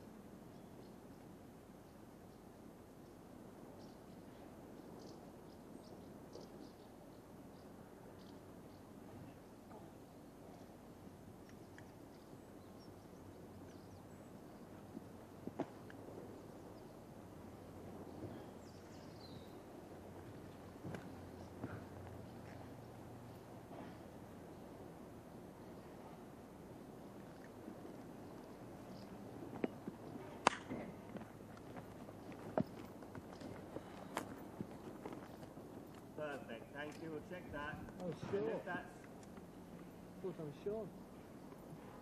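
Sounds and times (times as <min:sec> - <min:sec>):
low background hiss: 0:00.0 - 0:42.0
horse hooves on ground: 0:13.2 - 0:24.9, 0:25.6 - 0:40.0.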